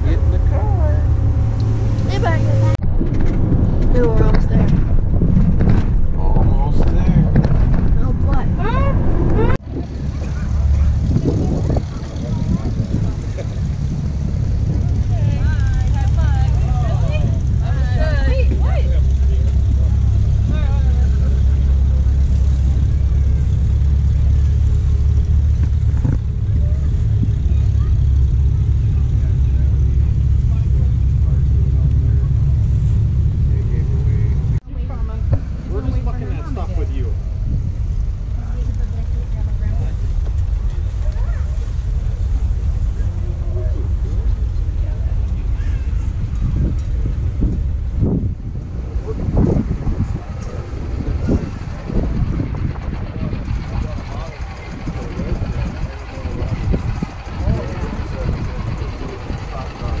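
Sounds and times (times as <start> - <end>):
people talking: 0.0 - 2.9, 3.8 - 4.9, 6.1 - 47.7, 48.5 - 60.0
steady low rumble: 0.0 - 60.0.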